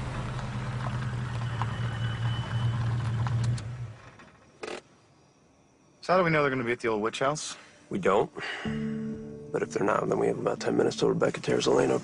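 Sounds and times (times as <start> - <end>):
car engine humming: 0.0 - 4.1.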